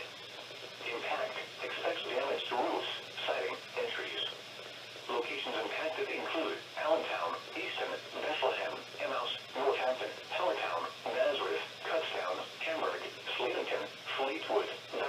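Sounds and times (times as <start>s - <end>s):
radio voice speaking: 0.8s - 4.4s, 5.1s - 15.0s.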